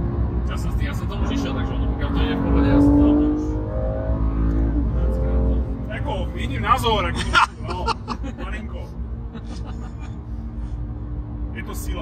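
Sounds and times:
car engine and road drone: 0.0s - 12.0s.

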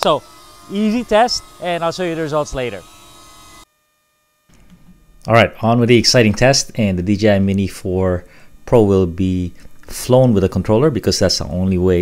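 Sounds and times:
faint background hum: 0.0s - 12.0s.

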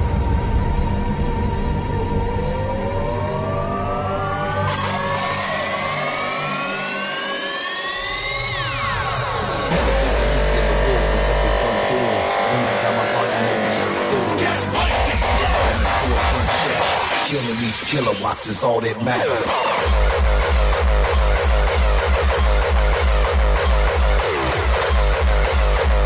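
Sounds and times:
rising synth sweep: 0.0s - 17.3s
heavy bass: 0.0s - 18.1s, 19.2s - 26.0s
hardcore dance music: 4.5s - 26.0s.

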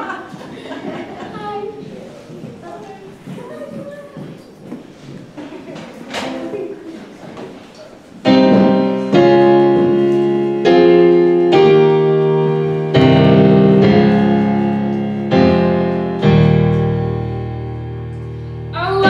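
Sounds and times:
piano chords: 6.1s - 7.2s, 8.2s - 19.0s.

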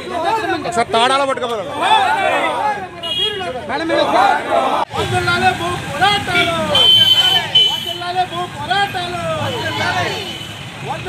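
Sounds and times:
marchers chanting slogans: 3.8s - 5.2s.

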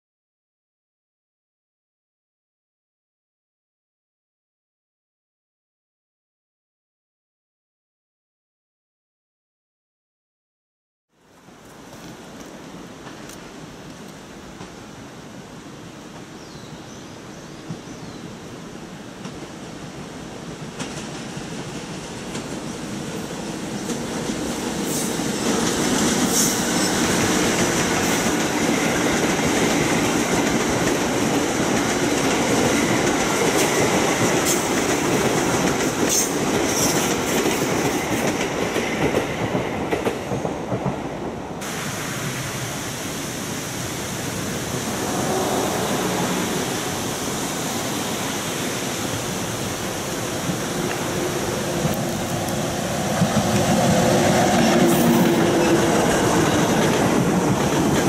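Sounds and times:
train wheels rumbling on rail: 11.6s - 16.4s, 17.2s - 58.0s
wheels clicking over rail joints: 49.7s - 58.0s.

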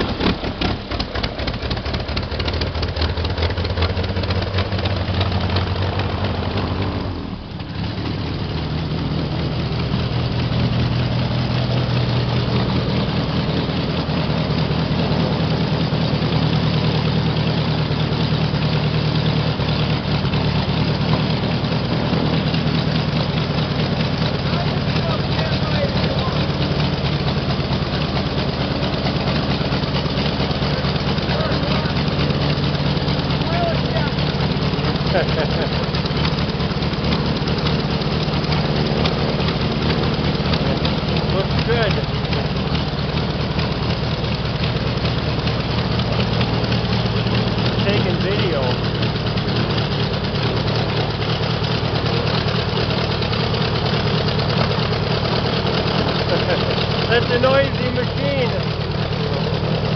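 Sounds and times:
air sled engine and propeller: 0.0s - 59.9s.

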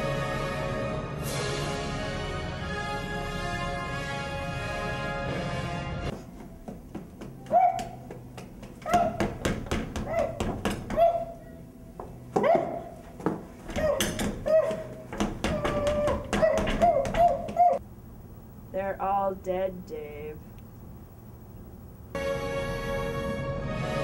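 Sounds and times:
orchestral music: 0.0s - 6.1s, 22.2s - 24.0s
pounding on a door: 8.8s - 11.2s, 12.4s - 17.8s.

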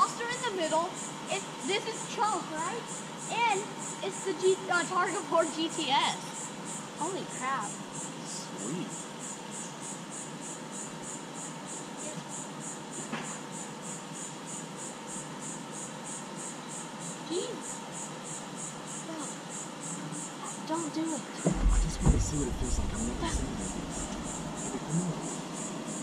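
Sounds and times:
insect chirping: 0.0s - 26.0s
faint voices: 19.1s - 26.0s.

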